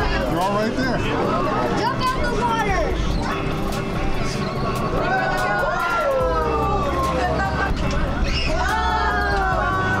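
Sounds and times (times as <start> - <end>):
excited voices and yelps: 4.9 - 10.0.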